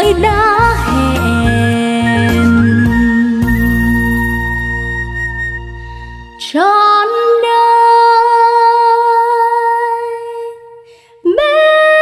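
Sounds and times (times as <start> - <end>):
breath: 10.8 - 11.2.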